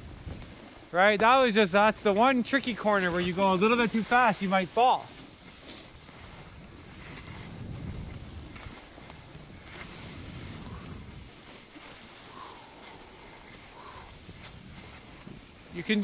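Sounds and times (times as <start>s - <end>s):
skis scraping over snow: 0.0s - 16.0s
wind rumbling on microphone: 0.0s - 16.0s.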